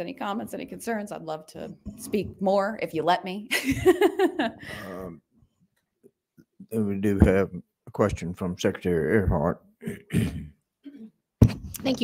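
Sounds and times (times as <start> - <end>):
person clearing throat: 9.8 - 11.1.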